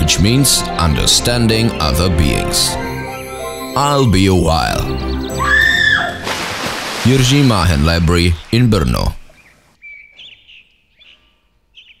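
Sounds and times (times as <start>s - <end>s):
faint bird chirps: 9.3s - 12.0s.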